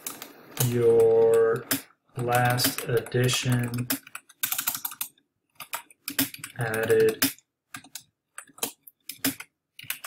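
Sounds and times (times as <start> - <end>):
computer keyboard keystrokes: 0.0 - 10.0.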